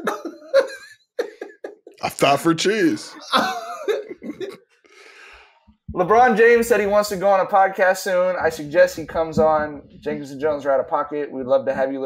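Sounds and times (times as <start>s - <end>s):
men laughing: 0.0s - 4.6s.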